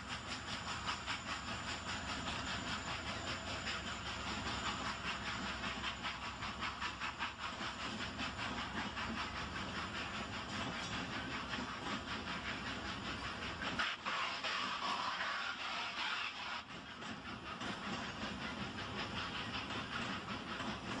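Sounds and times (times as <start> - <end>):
train rhythmic beat: 0.0 - 21.0.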